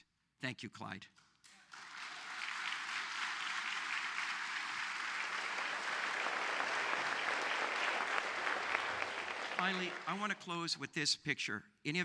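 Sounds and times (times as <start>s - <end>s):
audience applauding: 1.5s - 10.6s.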